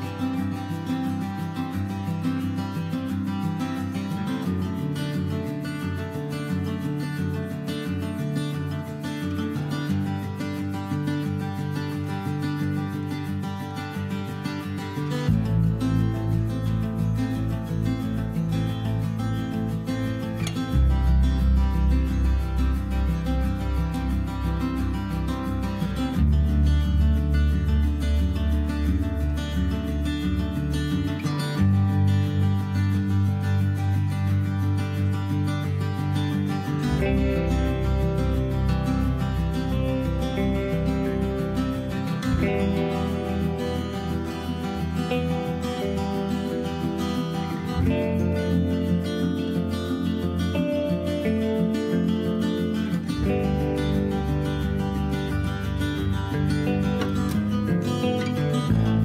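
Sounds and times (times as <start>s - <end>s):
strummed acoustic guitar music: 0.0s - 59.0s.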